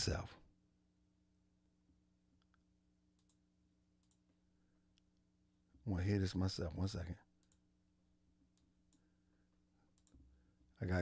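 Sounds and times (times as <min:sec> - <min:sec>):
faint steady hum: 0:00.0 - 0:11.0
computer clicks: 0:02.4 - 0:03.4, 0:04.0 - 0:04.3, 0:07.4 - 0:07.7, 0:09.9 - 0:10.3.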